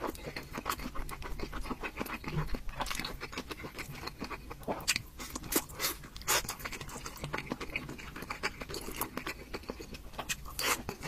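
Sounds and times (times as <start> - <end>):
person chewing dumplings: 0.0 - 11.0.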